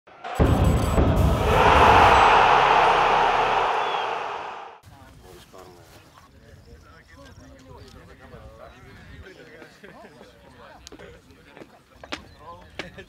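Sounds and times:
loud rush of noise: 0.1 - 4.8.

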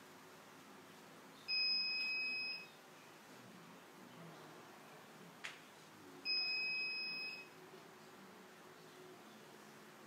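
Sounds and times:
high-pitched electronic beep: 1.5 - 2.8, 6.2 - 7.5.

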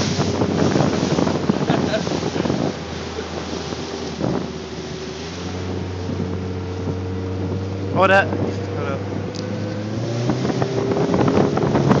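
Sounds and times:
motorboat engine running: 0.0 - 12.0
wind buffeting microphone: 0.0 - 12.0.

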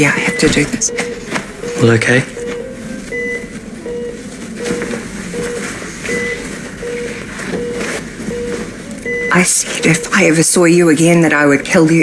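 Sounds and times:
patient monitor beeping: 0.0 - 12.0
higher beep: 0.2 - 10.5.

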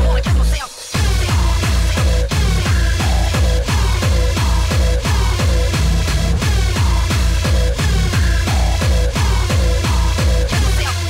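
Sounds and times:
deep kick drums: 0.0 - 11.0
electronic dance music: 0.0 - 11.0.

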